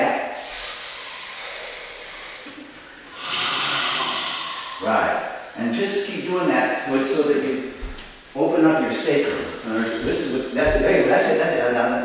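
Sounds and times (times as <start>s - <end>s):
person hissing like a cat: 0.4s - 5.1s.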